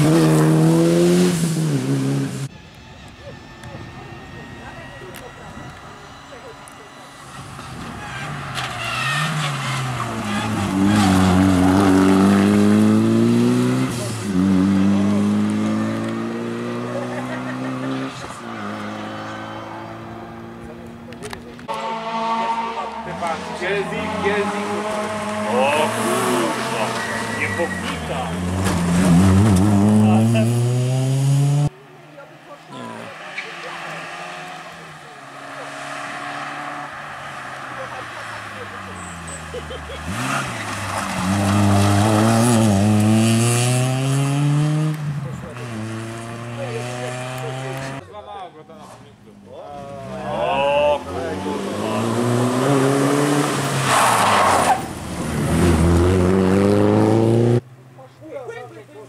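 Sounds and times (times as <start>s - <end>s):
rally car engines revving: 0.0s - 48.1s, 48.7s - 58.9s.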